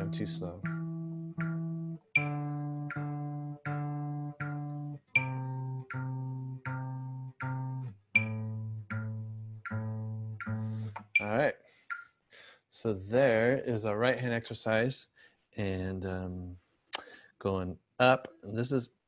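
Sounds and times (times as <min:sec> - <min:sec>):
acoustic guitar picking notes: 0:00.0 - 0:11.3.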